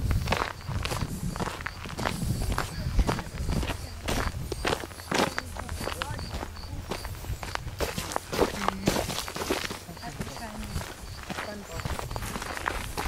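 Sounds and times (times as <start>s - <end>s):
footsteps on dirt track: 0.0s - 13.0s.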